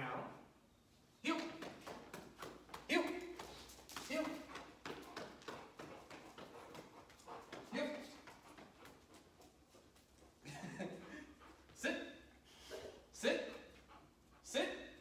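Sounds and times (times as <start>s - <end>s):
person's footsteps: 1.3s - 10.8s.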